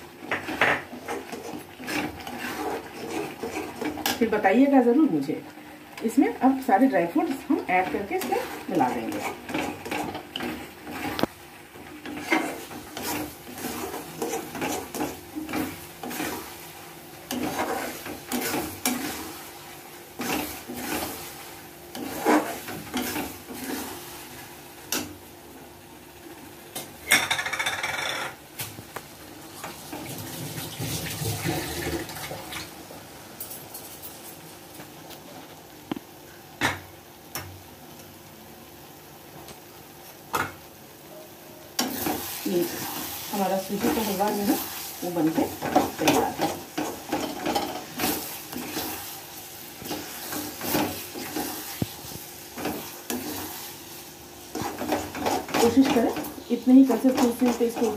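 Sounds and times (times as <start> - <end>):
spatula scraping steel pan: 0.3 - 4.2, 12.0 - 16.5, 17.3 - 19.3, 20.2 - 24.0.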